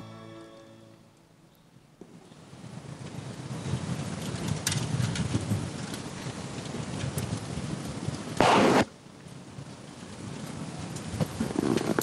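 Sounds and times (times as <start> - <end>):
rumbling outdoor noise: 0.0 - 12.0
scattered crackles: 2.0 - 12.0
loud burst of noise: 8.4 - 9.0.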